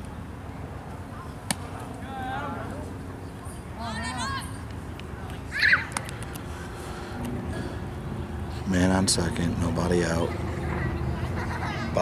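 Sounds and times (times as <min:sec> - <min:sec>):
low steady background noise: 0:00.0 - 0:12.0.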